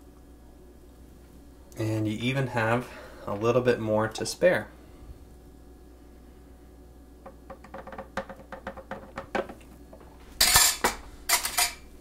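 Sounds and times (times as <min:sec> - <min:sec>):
plastic container knocking on glass jar: 0:07.3 - 0:09.6.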